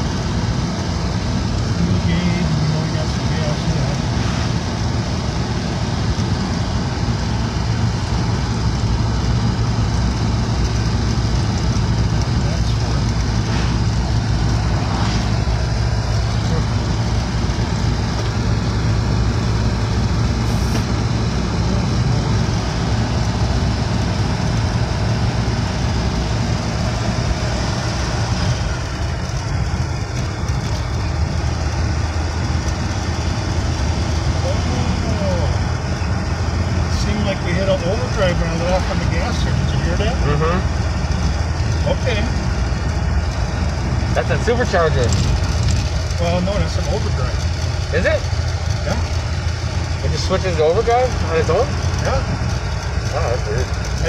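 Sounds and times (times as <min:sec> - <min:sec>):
car engine drone: 0:00.0 - 0:54.0.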